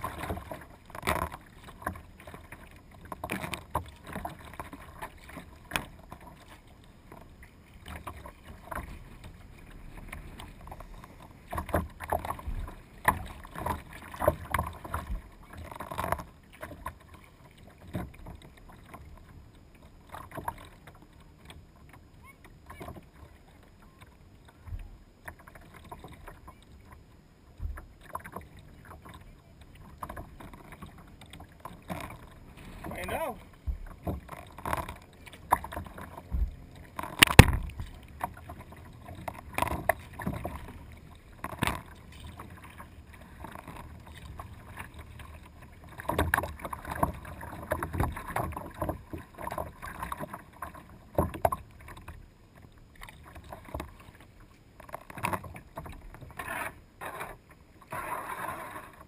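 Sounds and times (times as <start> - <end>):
paddle splashes: 0.0 - 59.0
water slapping hull: 0.0 - 59.0.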